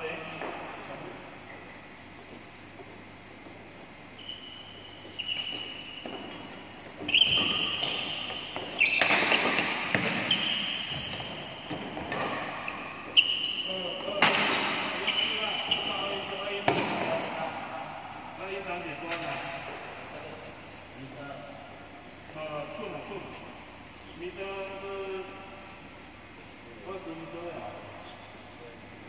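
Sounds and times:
shoes squeaking on floor: 0:04.1 - 0:17.4, 0:18.4 - 0:19.3
rackets striking shuttlecock: 0:07.0 - 0:12.7.

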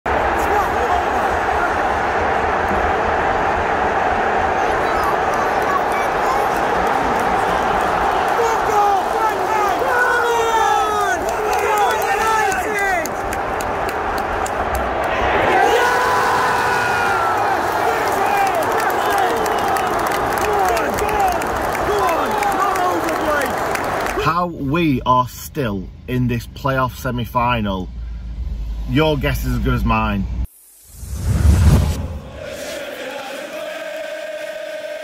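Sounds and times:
crowd cheering: 0:00.0 - 0:24.4, 0:32.1 - 0:35.0
stadium crowd shouting and singing: 0:00.1 - 0:24.4, 0:32.0 - 0:35.0.

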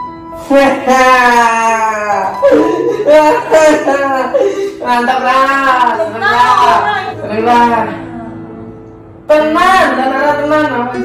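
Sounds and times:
person letting out long falling cry: 0:01.0 - 0:04.9.

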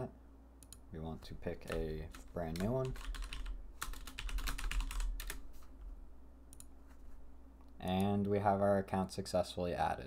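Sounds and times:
computer keyboard typing: 0:01.5 - 0:05.4.

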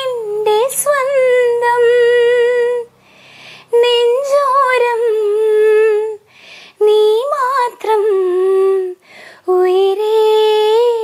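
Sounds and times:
woman singing unaccompanied: 0:00.0 - 0:02.9, 0:03.7 - 0:11.0
breath: 0:03.0 - 0:03.7, 0:06.3 - 0:06.8, 0:09.0 - 0:09.5.

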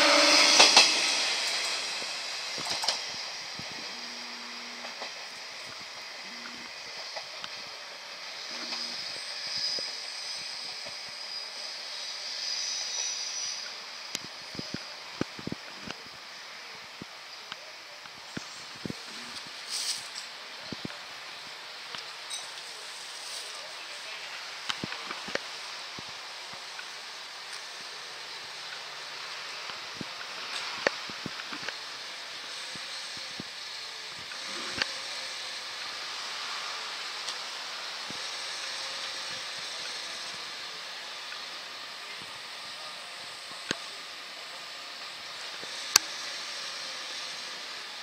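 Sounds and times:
faint outdoor hiss: 0:00.0 - 0:48.0.

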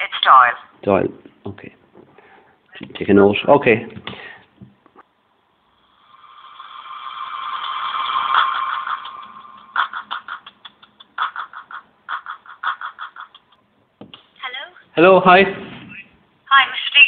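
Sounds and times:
telephone line hissing rush: 0:05.8 - 0:09.6.

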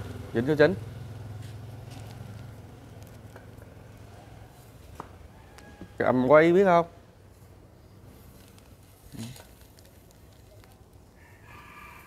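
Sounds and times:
passing vehicle engine hum: 0:00.0 - 0:05.3.

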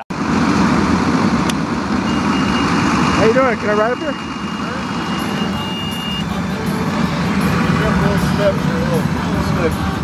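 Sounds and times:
vehicle engine running: 0:00.1 - 0:10.0
thin steady tone: 0:02.1 - 0:10.0.

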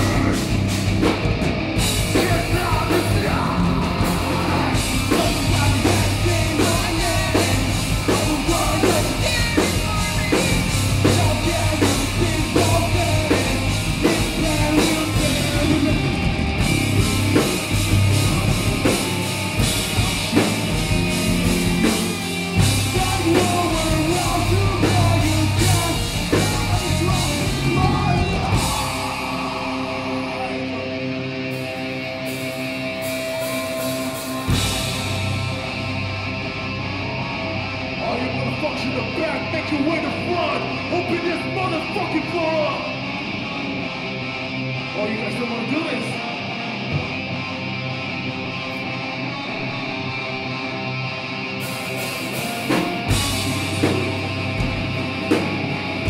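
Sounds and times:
heavy rock band playing: 0:00.0 - 0:56.0
held guitar chords ringing: 0:00.0 - 0:56.0.

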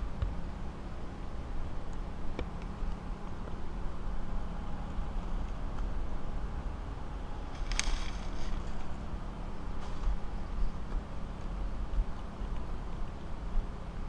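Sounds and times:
dry palm frond crackle: 0:07.4 - 0:09.1.

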